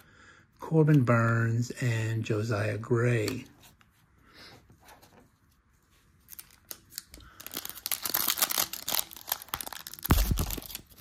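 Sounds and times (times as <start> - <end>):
foil pack crackling: 7.3 - 11.0.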